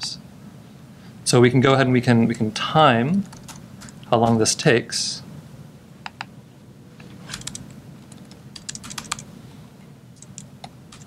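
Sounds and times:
faint room hum: 0:00.0 - 0:11.0
laptop keyboard typing: 0:03.2 - 0:04.0, 0:07.3 - 0:09.3, 0:10.2 - 0:11.0.

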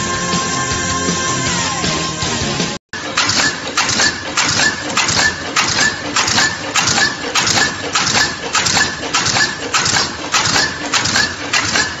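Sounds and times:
rhythmic clatter: 0:03.0 - 0:12.0.

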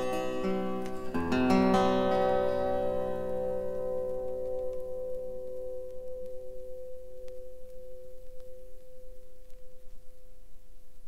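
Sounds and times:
acoustic guitar chord ringing: 0:00.0 - 0:09.9.

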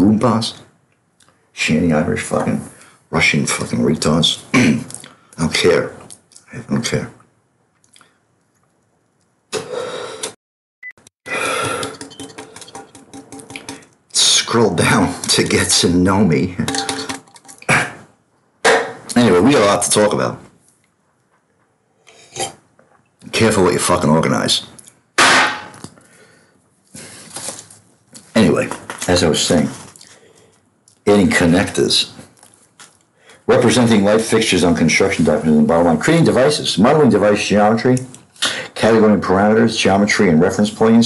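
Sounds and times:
man clearing his throat: 0:17.6 - 0:18.1.

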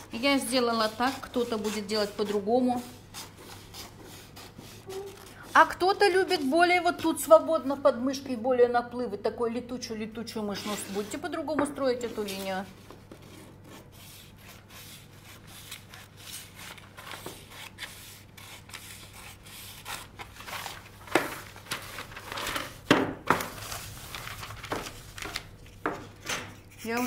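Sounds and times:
paper rustling and sliding: 0:15.6 - 0:26.8.

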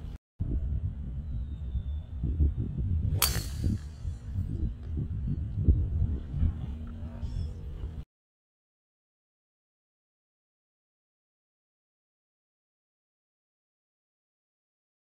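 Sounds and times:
low outdoor rumble: 0:00.0 - 0:08.0
golf club striking ball: 0:03.1 - 0:04.3.

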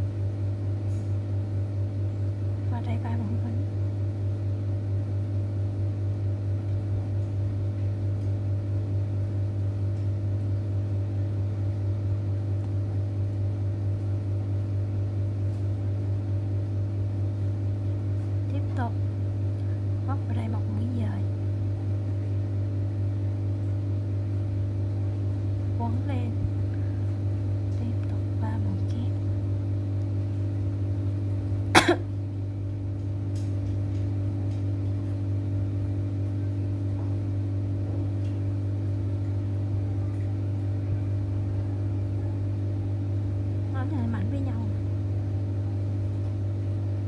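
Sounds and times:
steady low machine hum: 0:00.0 - 0:47.0.

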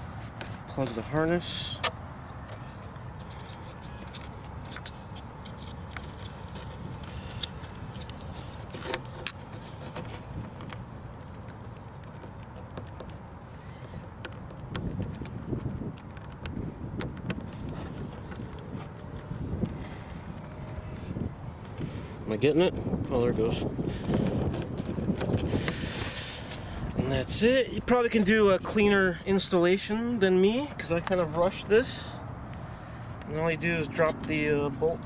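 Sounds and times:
low rumble of wind: 0:00.0 - 0:35.0
plastic connector clicks and rustles: 0:01.8 - 0:21.8.

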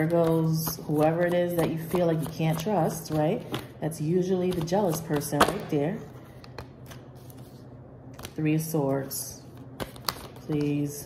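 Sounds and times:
cards being shuffled: 0:09.8 - 0:10.8.

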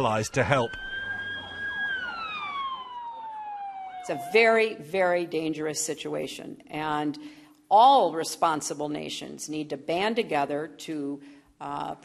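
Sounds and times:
emergency siren wailing: 0:00.0 - 0:04.9.

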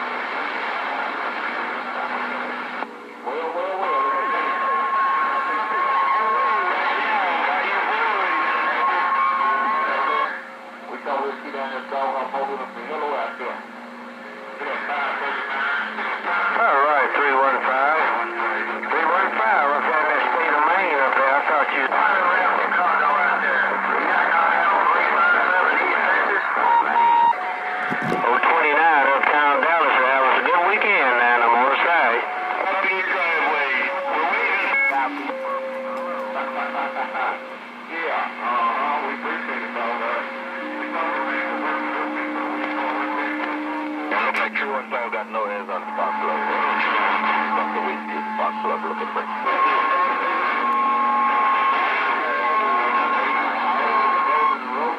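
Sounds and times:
static crack: 0:00.0 - 0:54.9
garbled radio voices: 0:00.1 - 0:54.9.

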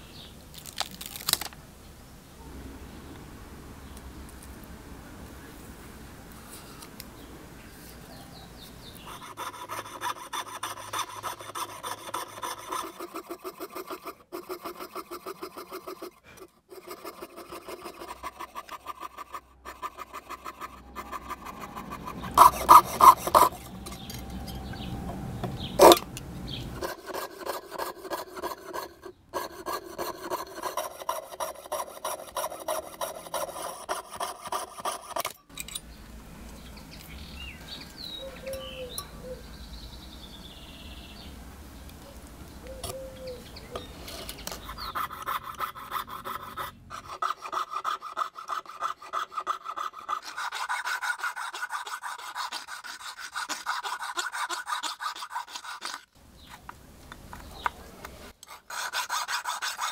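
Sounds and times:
birds chirping faintly: 0:00.0 - 0:13.0, 0:20.0 - 0:30.8, 0:35.5 - 0:45.4, 0:56.2 - 0:58.4
saw or file on metal: 0:08.9 - 0:24.9, 0:25.8 - 0:26.0, 0:26.8 - 0:35.4, 0:44.0 - 0:56.1, 0:58.4 - 0:59.9.

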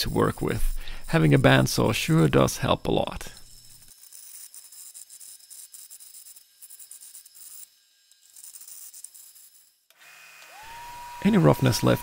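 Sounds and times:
bandsaw cutting wood: 0:09.9 - 0:12.0
disc sander motor whine: 0:10.0 - 0:12.0.

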